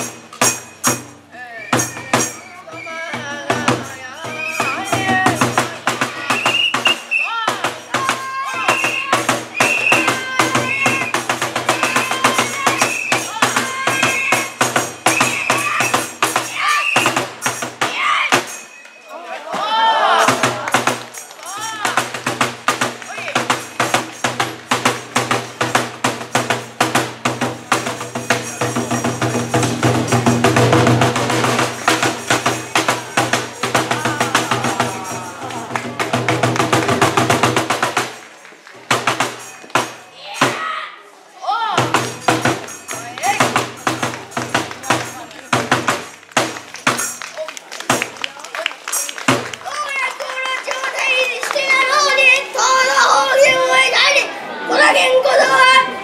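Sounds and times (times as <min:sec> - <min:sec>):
small hand cymbals: 0:00.0 - 0:19.1, 0:41.9 - 0:47.3
fast dense drumbeat: 0:03.1 - 0:18.5, 0:20.2 - 0:38.2, 0:41.8 - 0:47.2.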